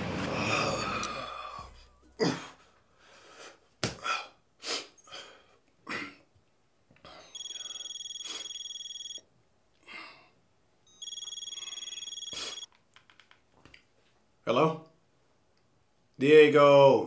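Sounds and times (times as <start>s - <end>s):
man breathing: 0.3s - 5.7s
mobile phone ringing: 7.1s - 9.3s, 10.9s - 12.7s.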